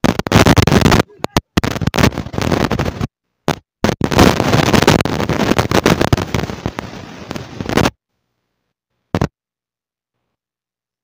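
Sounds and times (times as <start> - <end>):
wind buffeting microphone: 0.1 - 3.1.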